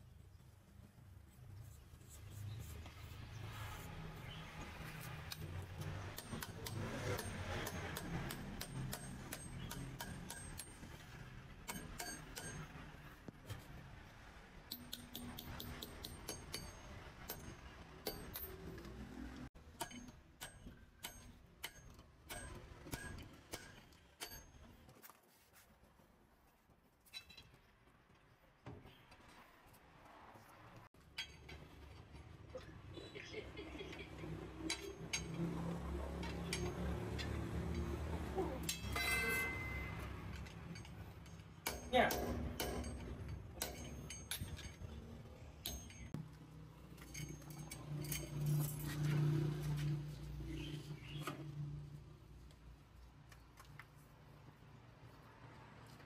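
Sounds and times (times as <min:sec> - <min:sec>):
wrench and steel parts clinking: 0:34.6 - 0:35.6, 0:36.2 - 0:46.2, 0:46.9 - 0:49.1.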